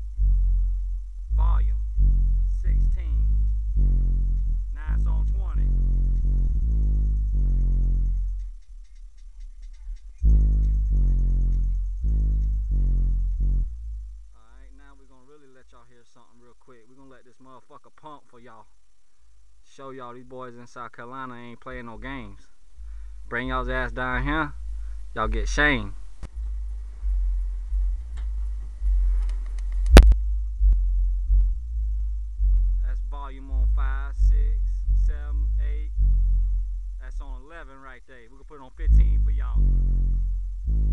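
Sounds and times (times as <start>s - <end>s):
deep bass notes: 0.0s - 15.0s, 21.8s - 40.9s.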